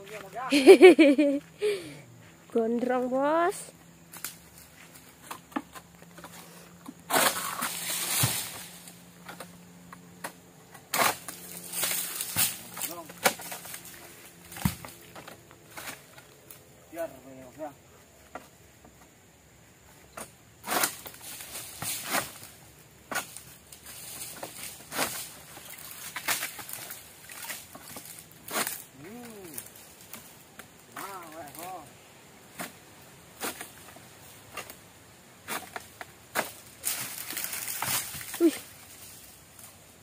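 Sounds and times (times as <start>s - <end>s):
sickle cutting palm frond: 4.1s - 16.6s, 20.1s - 31.9s, 32.5s - 34.8s, 35.4s - 40.0s
frond rustling: 6.2s - 9.6s, 10.3s - 17.6s, 20.6s - 40.0s.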